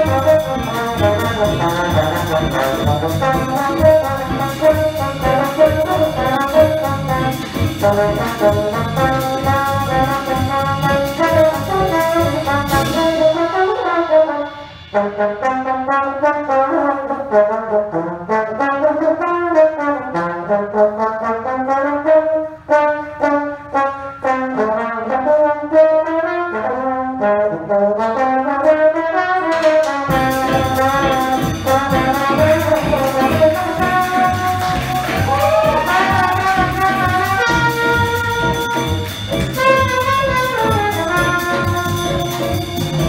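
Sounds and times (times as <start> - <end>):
big band playing: 0.0 - 43.0
trombone solo: 0.0 - 43.0.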